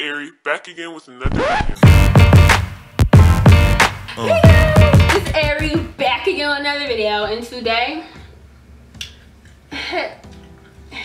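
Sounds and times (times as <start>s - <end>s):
woman's voice: 4.3s - 8.3s.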